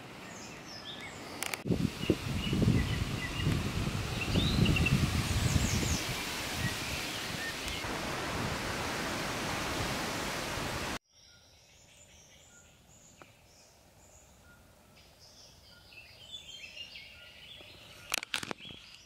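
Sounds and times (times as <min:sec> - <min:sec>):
faint birdsong: 0:00.0 - 0:07.9, 0:11.0 - 0:19.0
wind buffeting microphone: 0:01.5 - 0:11.0.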